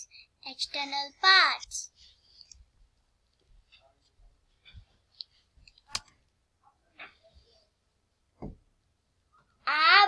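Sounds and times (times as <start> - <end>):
faint small noises: 0.0 - 10.0.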